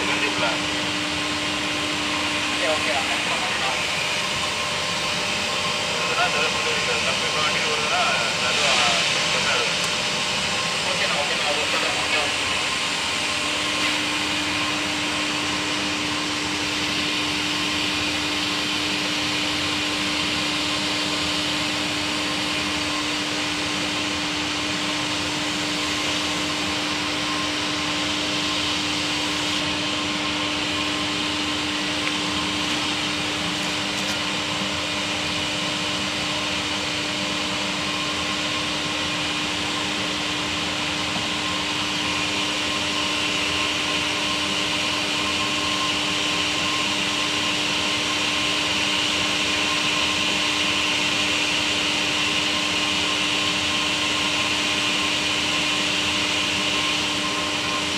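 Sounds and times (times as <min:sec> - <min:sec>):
motor whirring with hum: 0:00.0 - 0:57.9.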